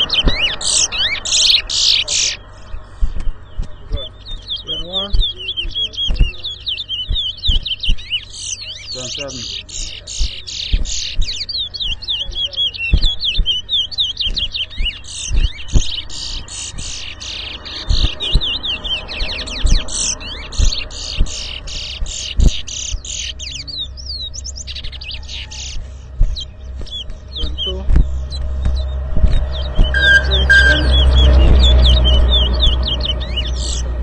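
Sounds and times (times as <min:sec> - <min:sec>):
finch singing fast whistled notes: 0:00.0 - 0:34.0
dull low knocks: 0:02.4 - 0:34.0.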